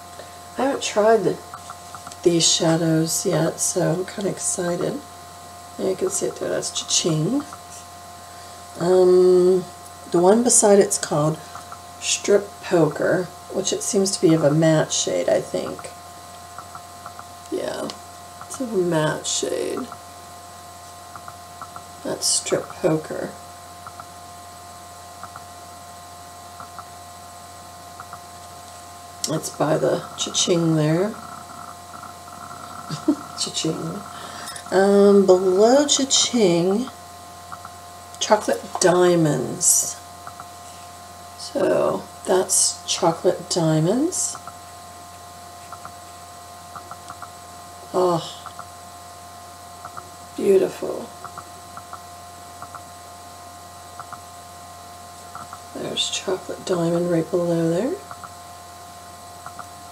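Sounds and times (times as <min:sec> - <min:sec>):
electrical hum: 0:00.0 - 0:59.9.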